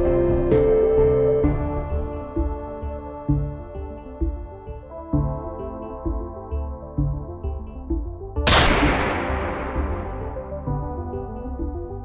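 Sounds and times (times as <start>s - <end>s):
synth background music: 0.0s - 12.0s
rifle shot with echo: 8.5s - 10.9s.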